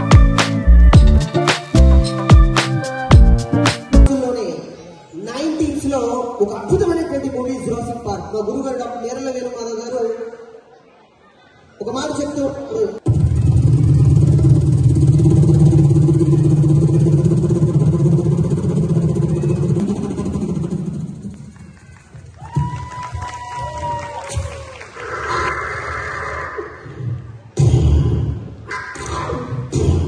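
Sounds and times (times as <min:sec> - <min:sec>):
loud music over sound system: 0:00.0 - 0:04.1.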